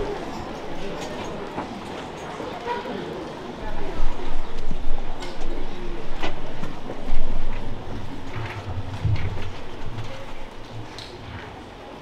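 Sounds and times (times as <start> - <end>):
audience murmuring: 0.0 - 12.0
small knocks and rustles: 6.2 - 11.5.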